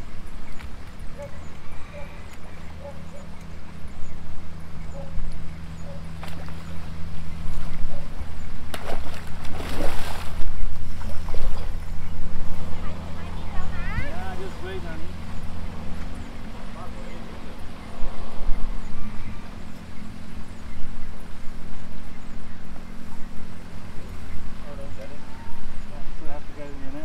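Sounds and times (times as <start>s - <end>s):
low machine hum: 0.0s - 27.0s
fish thrashing and splashing: 8.7s - 10.4s
loud splash: 8.7s - 10.4s.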